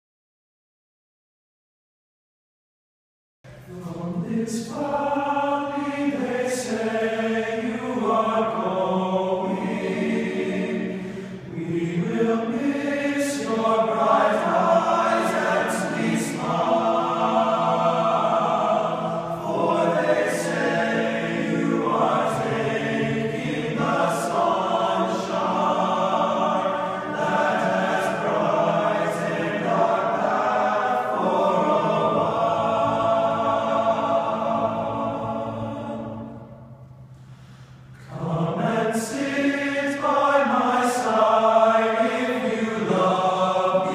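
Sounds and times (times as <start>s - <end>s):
choir singing sustained chords: 3.5s - 43.9s.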